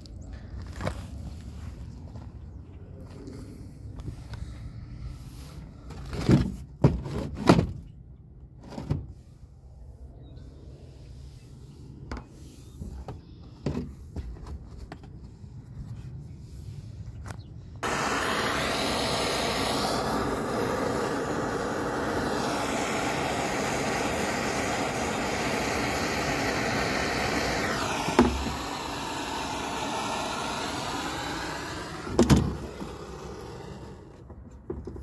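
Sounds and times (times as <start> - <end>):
gas torch flame hissing: 17.8 - 34.3.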